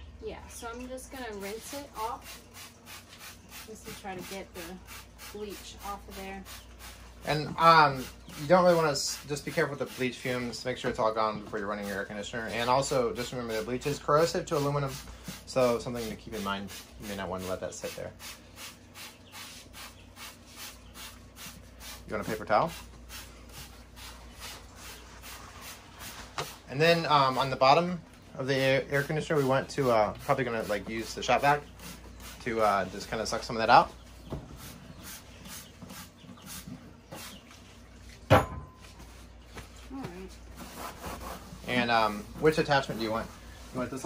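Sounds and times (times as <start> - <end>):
spray bottle squirting water: 1.6 - 7.0
paper towel rubbing plastic: 19.4 - 27.5, 40.6 - 44.0.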